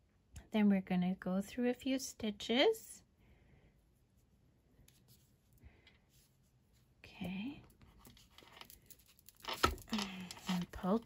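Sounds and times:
woman speaking: 0.5 - 3.0, 7.0 - 7.6, 9.9 - 11.0.

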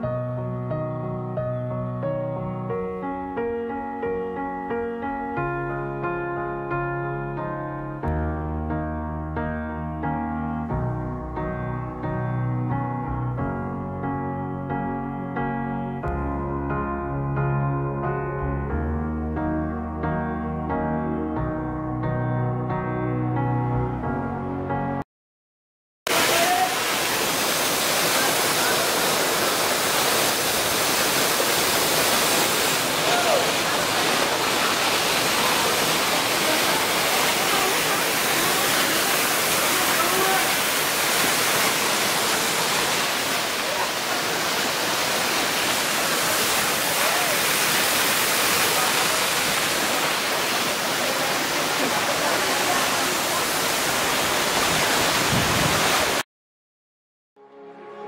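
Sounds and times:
rush of falling water: 26.1 - 56.2.

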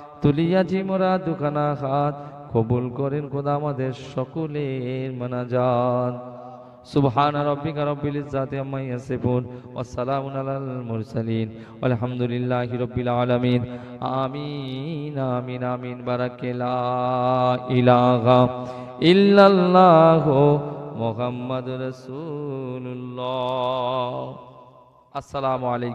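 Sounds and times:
man chanting prayer over pa: 0.0 - 24.5, 25.2 - 25.9.

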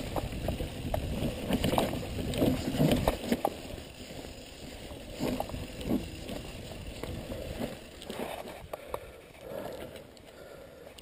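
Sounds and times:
bike rattles and knocks: 0.0 - 10.1
bike tyre and wind rumble: 0.0 - 11.0.

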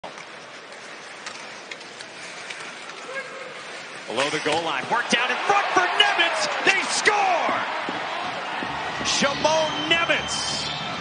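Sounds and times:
hockey sticks and puck clicks: 0.0 - 3.2, 4.0 - 5.2.

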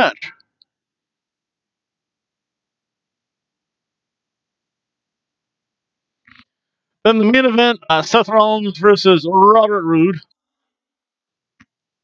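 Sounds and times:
man speaking: 0.0 - 0.3, 7.1 - 10.2.

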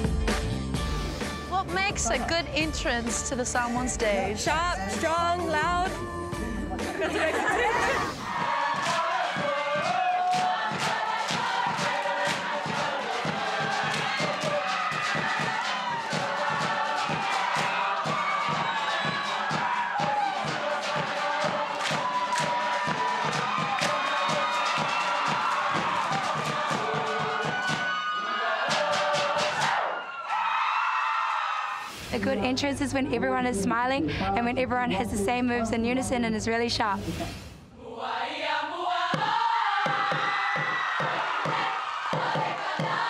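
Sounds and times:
group chanting and singing: 7.0 - 30.1, 37.0 - 43.0.

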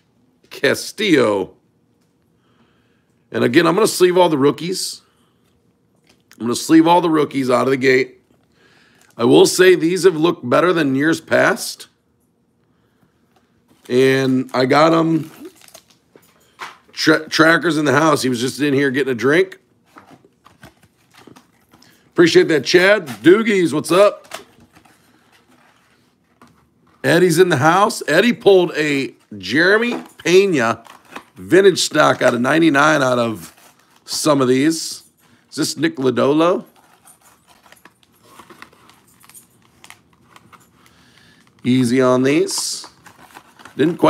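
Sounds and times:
card pack ticks and rustles: 13.3 - 17.4, 19.3 - 35.8, 36.4 - 44.0.

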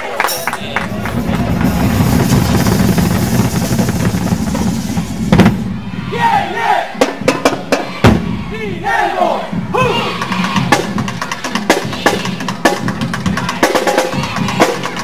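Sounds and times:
crowd cheering and shouting: 0.0 - 4.1, 5.0 - 15.0
drum strokes: 0.3 - 8.5, 9.5 - 15.0
shouted voices: 5.7 - 15.0.

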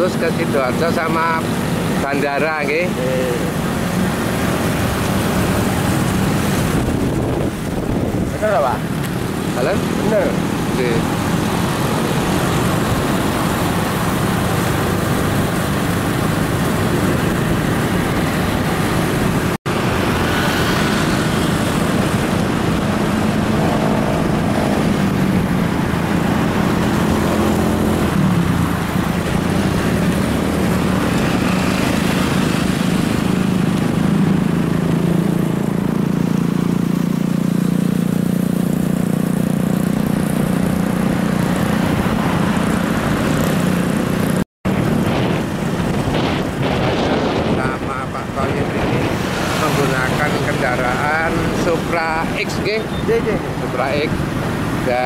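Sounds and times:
wind and road noise: 0.0 - 55.0
small motorcycle engine: 9.5 - 46.3.

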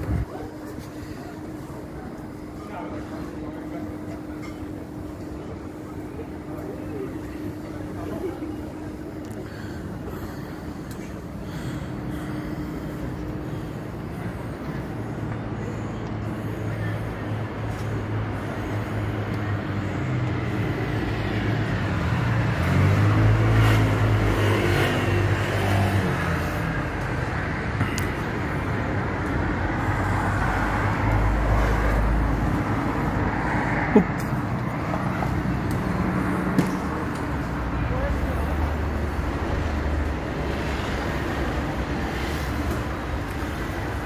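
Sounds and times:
traffic rumble: 0.0 - 44.0.

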